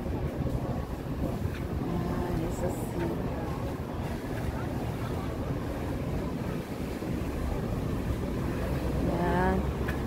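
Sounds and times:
distant boat engines: 0.0s - 10.0s
wind on microphone: 0.0s - 10.0s.

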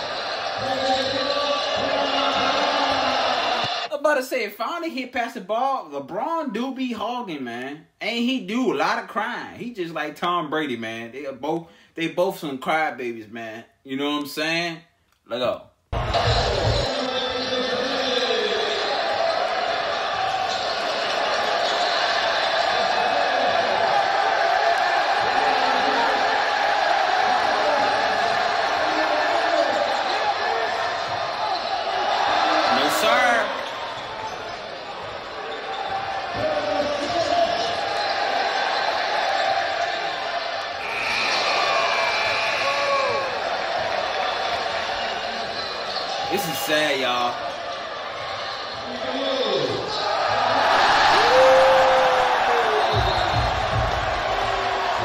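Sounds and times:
gym crowd noise: 0.0s - 3.9s, 15.9s - 55.0s
voices shouting: 16.0s - 46.8s, 47.5s - 55.0s
basketball bouncing on court: 52.4s - 55.0s.

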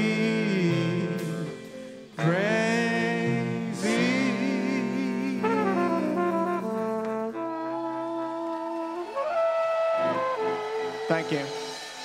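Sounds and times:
brass section playing held chords: 0.0s - 12.0s.

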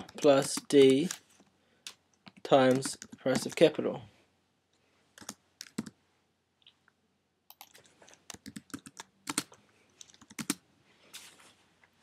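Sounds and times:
computer keyboard typing: 0.0s - 1.2s, 1.8s - 3.7s, 5.2s - 6.0s, 7.5s - 10.6s.

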